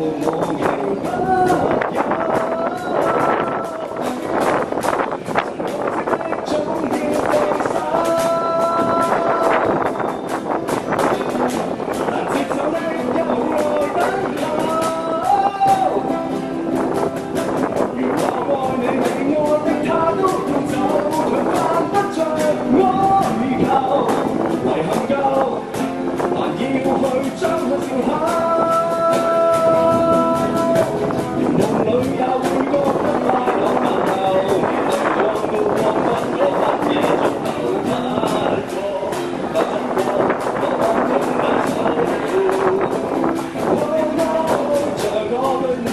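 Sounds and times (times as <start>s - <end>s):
man singing a ballad: 0.0s - 4.6s, 5.4s - 10.0s, 12.0s - 45.9s
cajon beat: 0.0s - 45.9s
strummed acoustic guitar: 0.0s - 45.9s.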